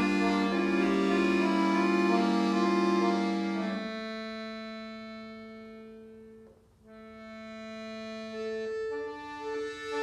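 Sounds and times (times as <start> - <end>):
button accordion chords: 0.0 - 10.0.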